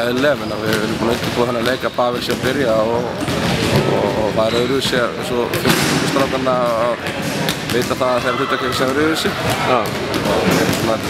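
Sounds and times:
basketball bouncing on floor: 0:00.0 - 0:04.3, 0:04.9 - 0:11.0
man speaking: 0:03.9 - 0:07.0, 0:07.7 - 0:11.0.

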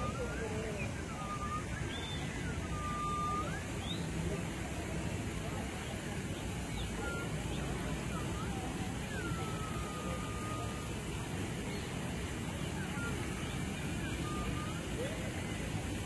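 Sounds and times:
faint whistle-like glides: 0:00.0 - 0:05.6, 0:06.7 - 0:16.0
faint distant voices: 0:00.0 - 0:16.0
traffic rumble: 0:00.0 - 0:16.0.

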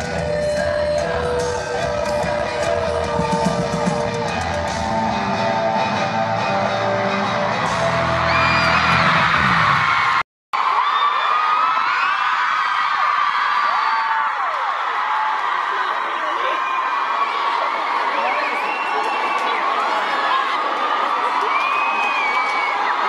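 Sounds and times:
live pop band music: 0:00.0 - 0:09.9
crowd screaming and cheering: 0:00.0 - 0:23.0.

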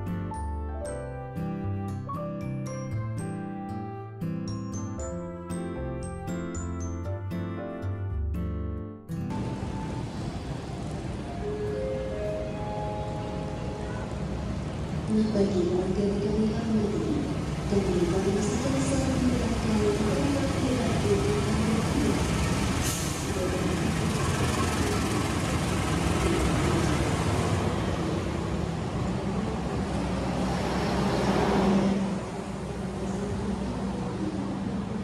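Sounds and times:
diesel locomotive engine drone: 0:09.1 - 0:35.0
train carriages rumbling by: 0:09.3 - 0:35.0.

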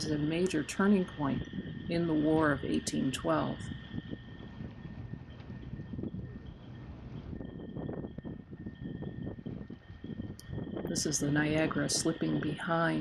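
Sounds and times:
faint steady high tone: 0:00.0 - 0:13.0
wind buffeting microphone: 0:00.0 - 0:13.0.

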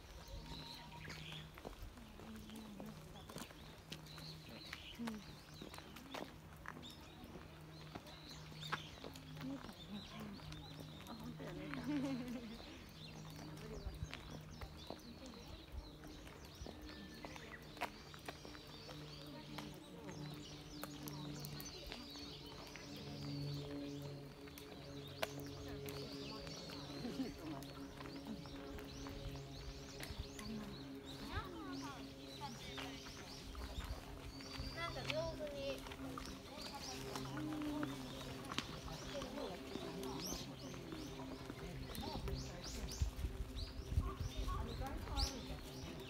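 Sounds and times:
birds chirping: 0:00.0 - 0:46.0
footsteps on paved path: 0:00.0 - 0:46.0
murmuring voices: 0:00.0 - 0:46.0.

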